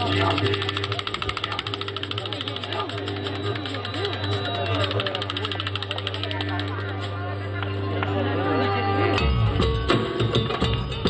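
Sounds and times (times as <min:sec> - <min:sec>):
fast buzzing tick: 0:00.0 - 0:07.1
indistinct talking: 0:00.0 - 0:11.0.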